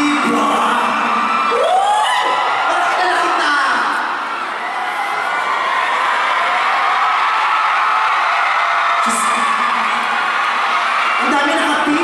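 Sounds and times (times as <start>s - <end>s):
concert audience cheering and screaming: 0.0s - 12.0s.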